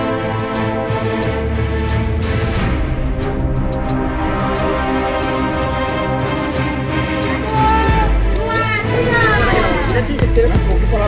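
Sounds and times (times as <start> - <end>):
background music with low bass: 0.0 - 11.0.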